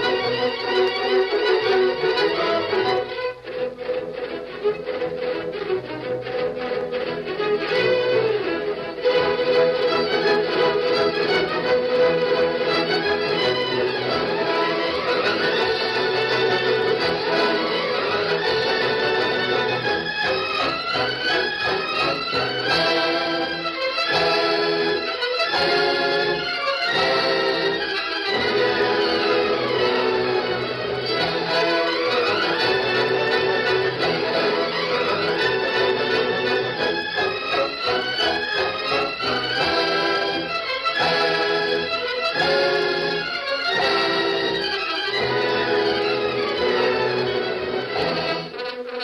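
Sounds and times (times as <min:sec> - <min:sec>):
orchestral strings music: 0:00.0 - 0:49.0.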